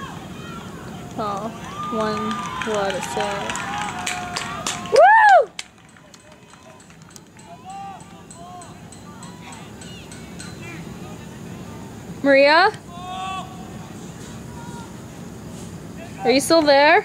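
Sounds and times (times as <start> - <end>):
distant calls and voices: 0.0 - 17.0
open-air background noise: 0.0 - 17.0
loud vocal shout: 1.5 - 5.5, 12.9 - 13.7.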